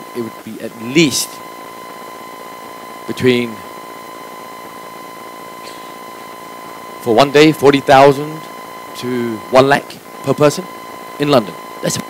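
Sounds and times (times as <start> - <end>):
high-pitched electrical whine: 0.0 - 12.0.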